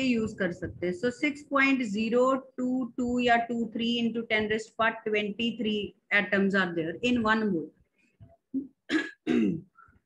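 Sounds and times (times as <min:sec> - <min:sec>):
woman clearing throat and coughing: 0:08.6 - 0:09.8.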